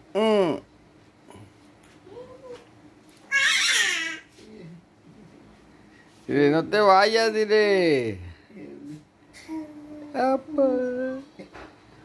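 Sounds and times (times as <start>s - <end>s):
baby wailing cry: 3.3s - 4.3s.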